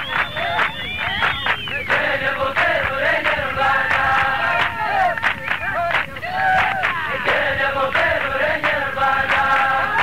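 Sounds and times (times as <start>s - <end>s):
group of voices chanting: 1.9s - 5.2s, 5.8s - 10.0s.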